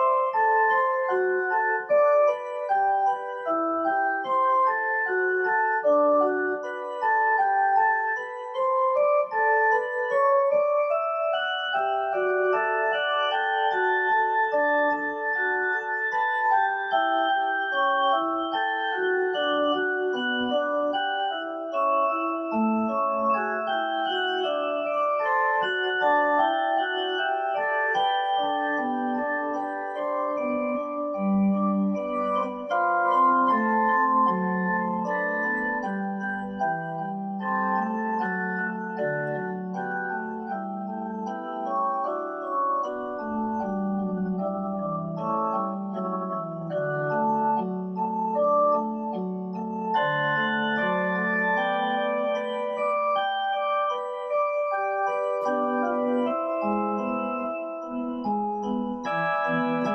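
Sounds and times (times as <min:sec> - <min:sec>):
electronic keyboard melody: 0:00.0 - 0:59.9.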